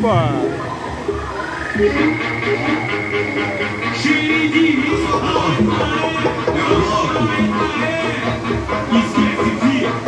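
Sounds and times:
loud electronic music: 0.3 - 10.0.

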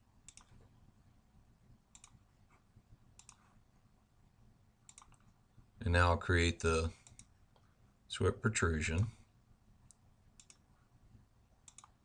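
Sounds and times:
computer mouse clicks: 0.2 - 0.7, 1.9 - 2.2, 3.1 - 3.6, 4.8 - 5.4, 7.0 - 7.7, 9.8 - 10.7, 11.6 - 12.0.

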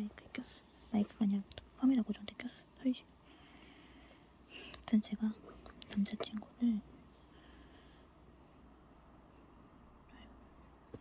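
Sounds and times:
person whispering: 4.8 - 7.0, 10.0 - 10.5.

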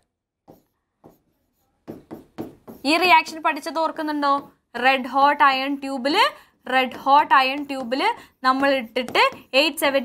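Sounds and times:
pen scratching on glass: 0.4 - 3.8, 6.8 - 10.0.

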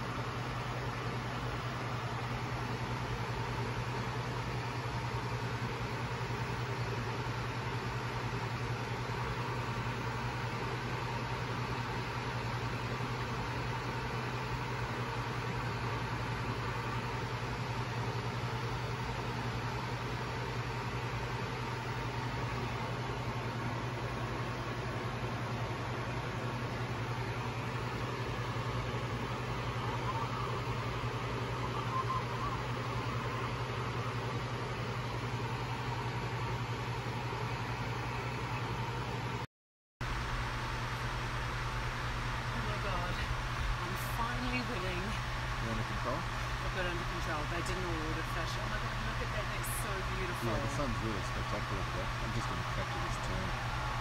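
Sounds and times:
air-conditioning hiss: 0.0 - 39.4, 40.0 - 54.0
constant low hum: 0.0 - 54.0.

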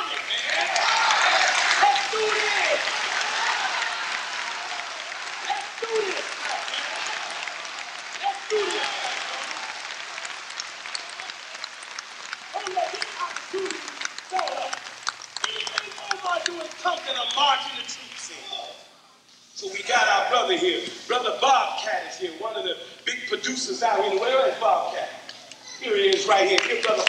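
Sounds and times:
audience applauding and cheering: 0.0 - 18.4
voices calling out: 0.0 - 19.0.

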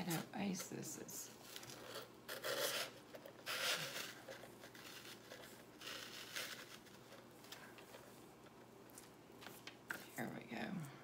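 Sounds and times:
artificial stems scraping in foam: 1.5 - 7.2.

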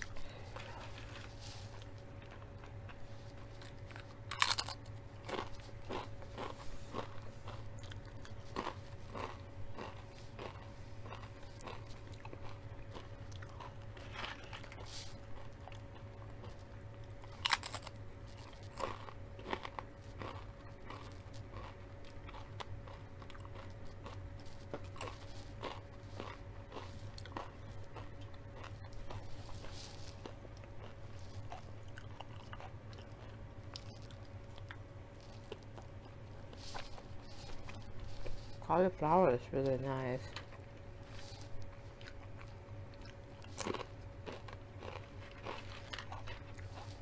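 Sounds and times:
person chewing: 0.0 - 38.6, 40.2 - 47.0.

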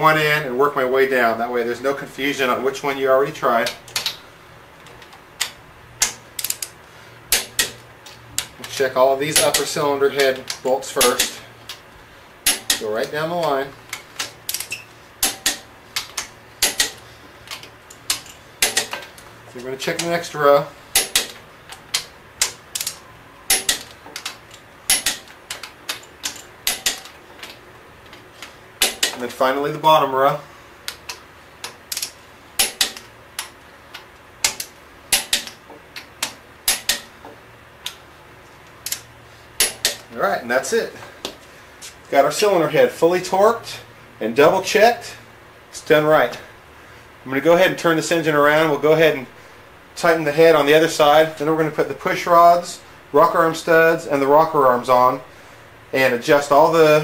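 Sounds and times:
torque wrench clicking: 4.8 - 11.8, 13.4 - 27.6, 30.8 - 37.1, 38.8 - 40.1.

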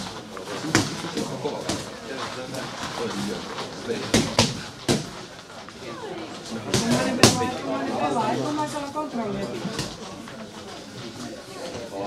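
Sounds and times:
boxing gloves smacking: 0.0 - 1.9, 4.0 - 5.3
low voices: 0.0 - 12.0.

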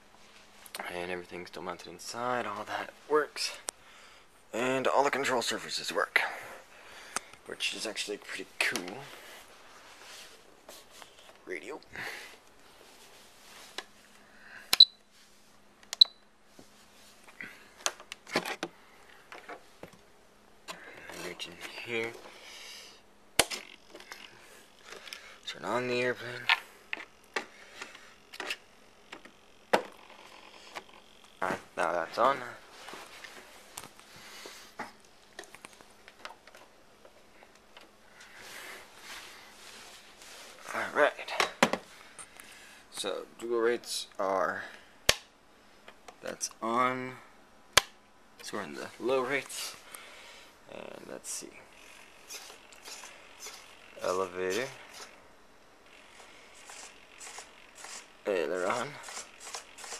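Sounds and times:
servo whirring: 51.8 - 54.0, 56.0 - 59.9.

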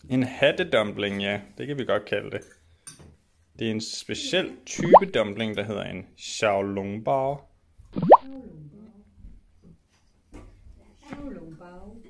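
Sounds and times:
upward-sweeping bloop pop effect: 4.8 - 5.2, 8.0 - 8.4.

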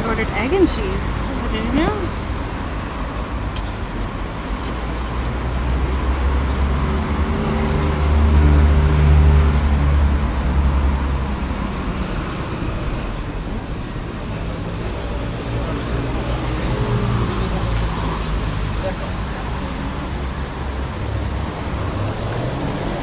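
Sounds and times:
street traffic: 0.0 - 23.0
vehicle engine humming: 0.0 - 23.0.

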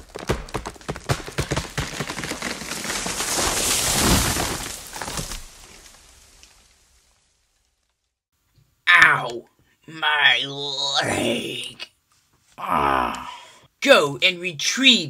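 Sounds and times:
tree cracking and crashing down: 0.0 - 8.2.

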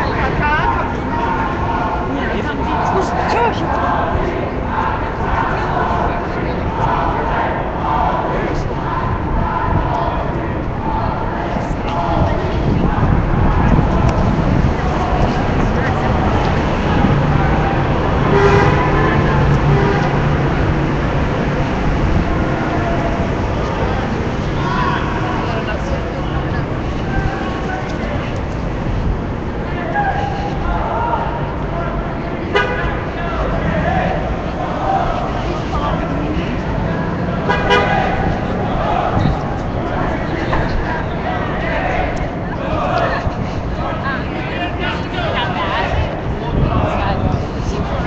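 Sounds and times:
city street traffic: 0.0 - 48.0
long vehicle horn: 18.1 - 20.6, 32.4 - 33.2, 37.4 - 38.3.

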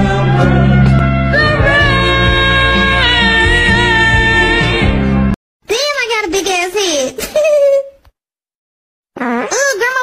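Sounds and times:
cartoon child giggling: 7.2 - 8.0.

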